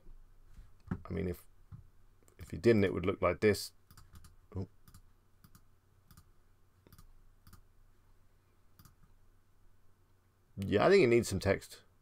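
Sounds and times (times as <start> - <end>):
computer mouse clicks: 3.9 - 7.7, 8.8 - 9.1.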